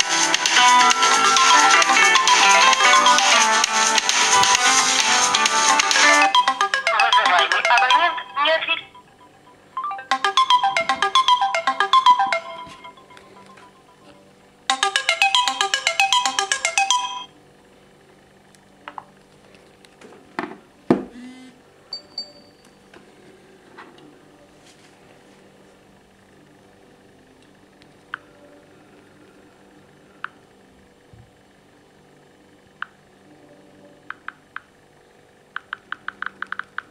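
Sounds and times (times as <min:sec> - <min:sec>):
phone alarm melody: 0:00.8 - 0:03.6, 0:05.7 - 0:14.1, 0:14.7 - 0:17.3.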